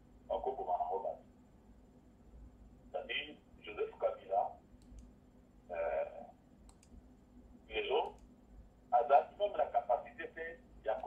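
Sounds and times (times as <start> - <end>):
person speaking: 3.0 - 4.6, 5.7 - 6.4, 7.6 - 8.2, 8.9 - 11.0
faint clicks: 4.7 - 5.2, 6.6 - 7.0, 8.0 - 8.4.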